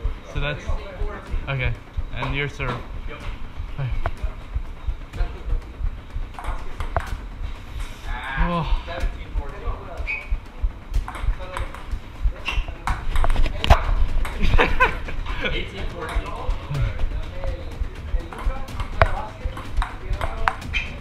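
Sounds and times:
table tennis ball clicks: 0:06.4 - 0:07.2.

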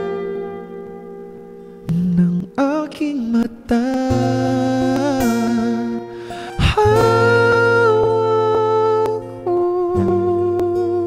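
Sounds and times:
acoustic guitar strumming: 0:00.0 - 0:11.0
man singing long wordless notes: 0:01.8 - 0:11.0
quick breath: 0:06.1 - 0:06.6.

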